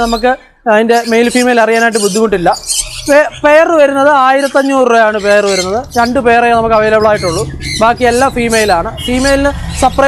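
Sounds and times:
caged birds squawking and chirping: 0.0s - 10.0s.

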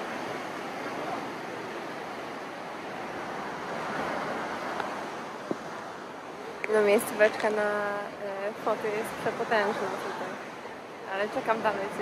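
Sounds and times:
sea surf breaking over rocks: 0.0s - 12.0s.

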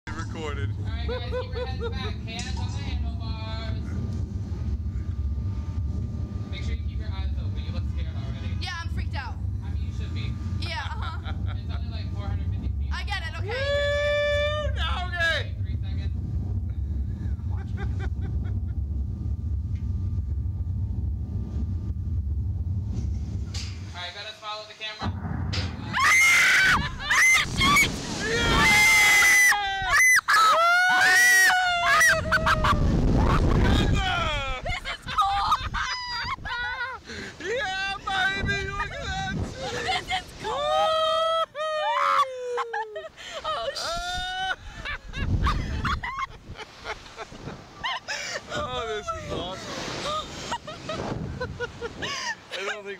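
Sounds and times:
low rumble: 0.0s - 24.3s, 25.0s - 30.0s, 31.7s - 41.1s, 43.9s - 47.8s, 48.4s - 52.2s
wind rushing: 0.1s - 24.0s, 25.0s - 30.0s, 32.1s - 41.0s, 44.0s - 52.2s
person laughing or shouting: 1.0s - 2.1s, 13.5s - 14.8s, 26.0s - 47.2s, 47.8s - 52.8s
riders screaming and laughing: 13.5s - 14.8s, 25.9s - 37.6s, 38.8s - 52.6s.

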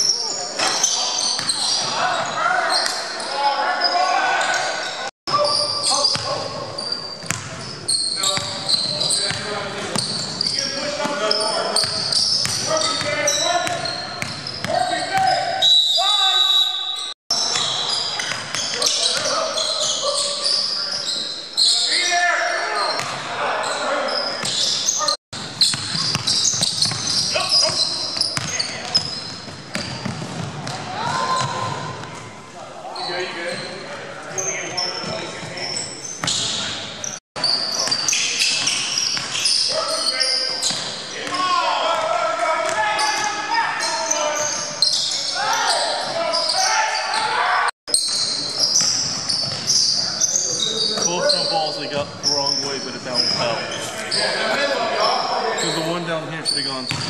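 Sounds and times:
sneakers squeaking: 0.0s - 57.0s
basketball bouncing on wooden floor: 25.7s - 27.2s, 28.4s - 30.8s
players shouting: 30.9s - 32.0s, 39.7s - 47.7s.

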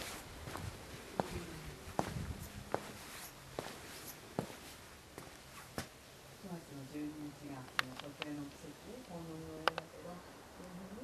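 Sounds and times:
footsteps walking: 0.0s - 5.9s.

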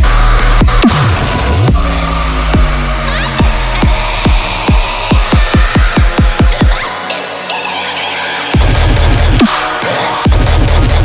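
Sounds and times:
heavy dubstep music: 0.0s - 11.0s.

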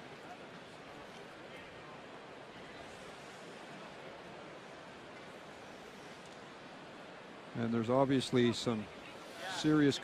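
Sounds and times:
arena crowd hubbub: 0.0s - 10.0s.

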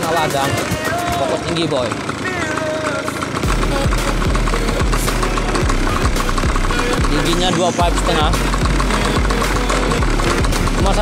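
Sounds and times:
bike jolting over bumps: 0.0s - 11.0s
motorcycle engine running: 0.0s - 11.0s.

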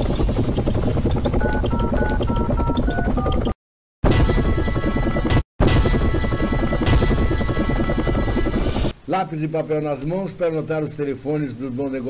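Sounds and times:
helicopter rotor chop: 0.0s - 9.0s.

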